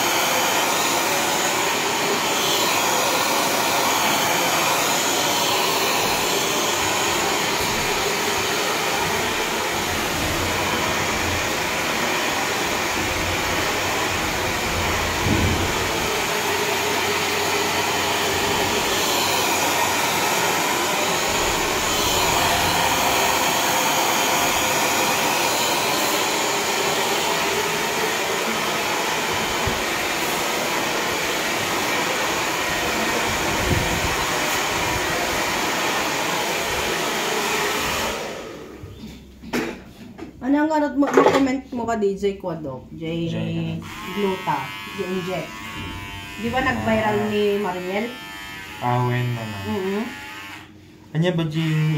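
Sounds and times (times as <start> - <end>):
hair dryer blowing: 0.0 - 38.9, 43.8 - 50.8.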